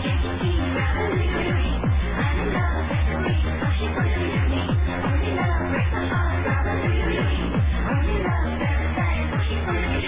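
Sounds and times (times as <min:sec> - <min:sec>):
hard trance dance track: 0:00.0 - 0:10.0.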